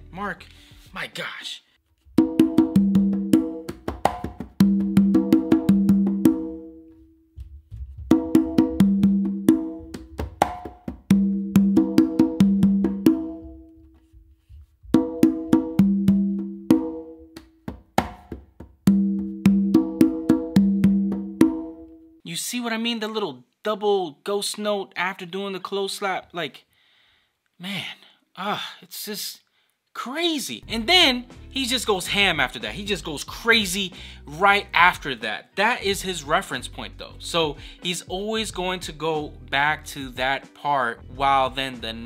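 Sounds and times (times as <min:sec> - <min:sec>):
congas played by hand: 0:02.1 - 0:22.0.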